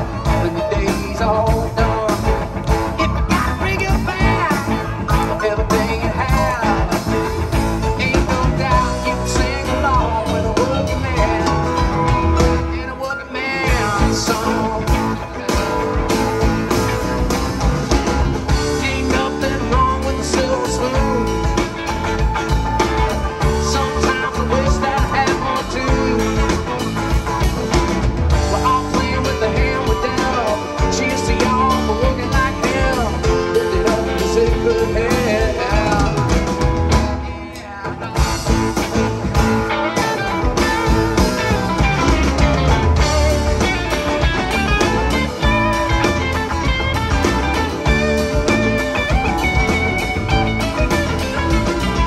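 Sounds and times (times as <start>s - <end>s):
drum kit: 0.0s - 52.0s
electric guitar lead bending pitch: 0.0s - 52.0s
keyboard: 0.0s - 52.0s
live rock band playing: 0.0s - 52.0s.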